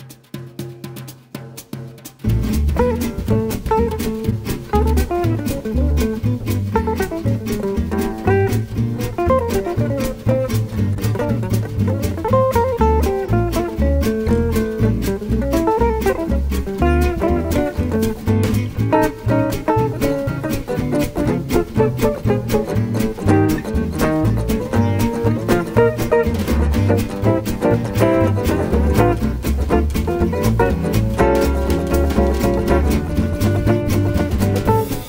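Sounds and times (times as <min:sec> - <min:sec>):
drums: 0:00.0 - 0:35.0
jazz guitar lines: 0:00.0 - 0:35.0
walking double bass: 0:00.2 - 0:35.0.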